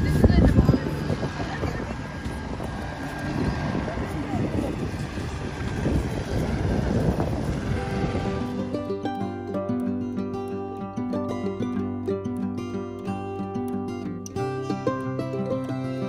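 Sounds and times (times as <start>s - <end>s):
wind buffeting microphone: 0.0s - 9.6s
voices of passers-by: 0.0s - 16.0s.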